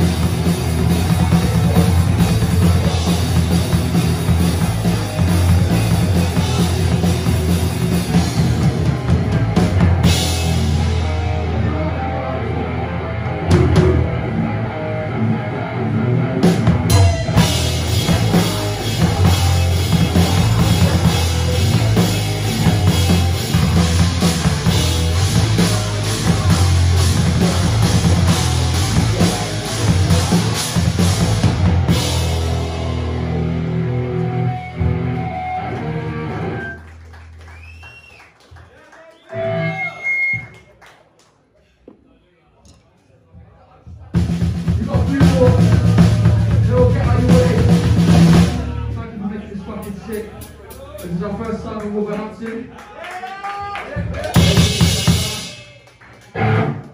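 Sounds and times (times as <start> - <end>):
electric guitar sounds: 0.0 - 37.8, 39.3 - 40.5, 56.2 - 56.9
rock band playing: 0.0 - 37.9, 39.3 - 40.5, 44.1 - 52.3, 53.7 - 56.9
voices and shouts: 48.1 - 56.0.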